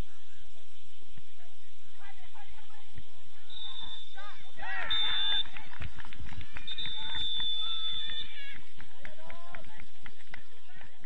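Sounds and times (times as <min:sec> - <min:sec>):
referee's whistle blasts: 0:03.5 - 0:04.2, 0:04.8 - 0:05.5, 0:06.6 - 0:08.4
players shouting: 0:03.5 - 0:09.4.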